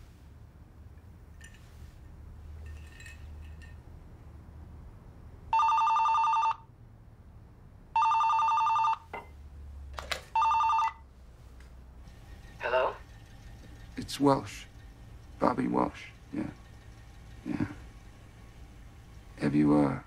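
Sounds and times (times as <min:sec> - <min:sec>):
telephone ringing: 0:05.5 - 0:06.7, 0:08.0 - 0:09.1, 0:10.3 - 0:11.1, 0:12.1 - 0:20.0.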